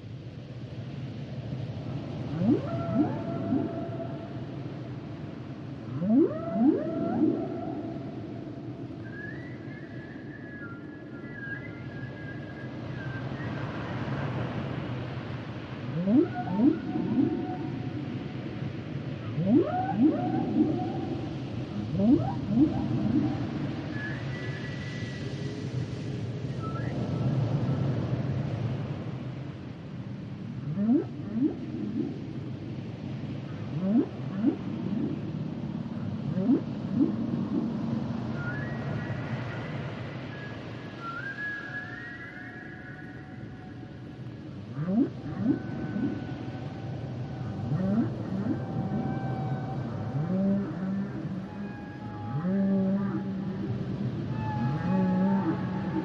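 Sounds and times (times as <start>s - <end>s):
high held whale tones: 2.3s - 4.6s, 6.0s - 10.9s, 16.0s - 18.0s, 19.3s - 24.8s, 30.7s - 32.2s, 33.8s - 35.2s, 36.3s - 39.4s, 41.0s - 43.9s, 44.8s - 53.6s, 54.2s - 56.0s
whale song whoops: 2.3s - 4.6s, 6.0s - 13.6s, 16.0s - 18.0s, 19.3s - 25.6s, 26.5s - 27.2s, 36.3s - 43.9s, 44.8s - 56.0s
low sea rumble: 15.2s - 56.0s.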